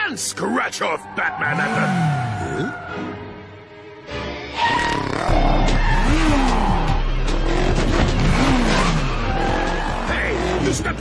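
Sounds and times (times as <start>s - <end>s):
background music: 0.0s - 11.0s
tyres skidding: 0.2s - 3.6s, 4.2s - 11.0s
cartoon motorcycle engines revving: 1.4s - 2.6s, 4.7s - 11.0s.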